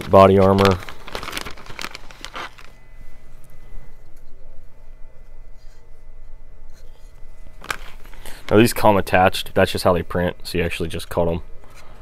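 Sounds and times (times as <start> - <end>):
plastic bag crinkling: 0.0 - 2.8, 7.5 - 8.9.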